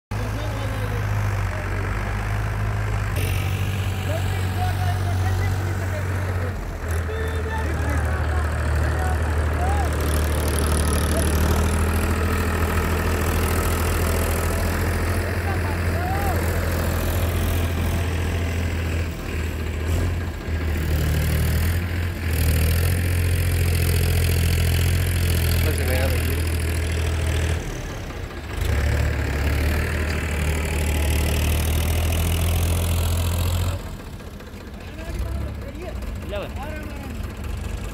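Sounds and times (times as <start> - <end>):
tractor diesel engine under load: 0.1 - 37.9.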